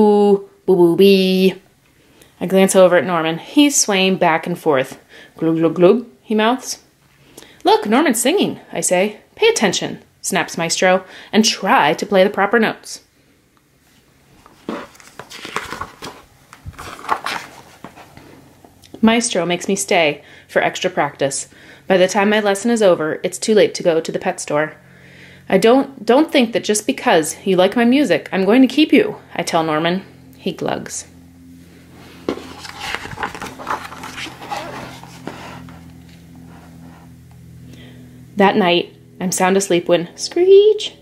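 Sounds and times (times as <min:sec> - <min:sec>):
steady low hum: 0:00.0 - 0:41.0
paper page rustling: 0:14.4 - 0:18.2, 0:32.3 - 0:36.1.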